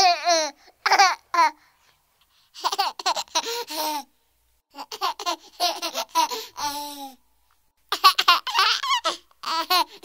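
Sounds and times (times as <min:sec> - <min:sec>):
baby laughing and babbling: 0:00.0 - 0:01.6, 0:02.6 - 0:04.1, 0:04.7 - 0:07.2, 0:07.9 - 0:10.0.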